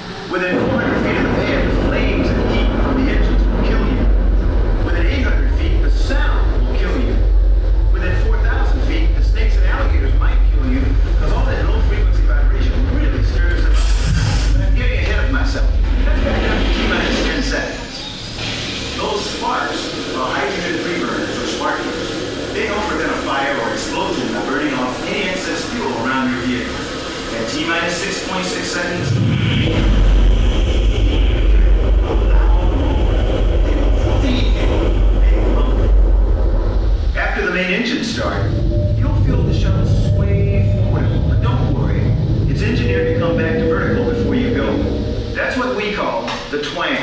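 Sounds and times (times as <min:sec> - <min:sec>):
low steady hum: 0:00.0 - 0:47.0
steady deep rumble: 0:00.0 - 0:47.0
person speaking: 0:38.2 - 0:47.0.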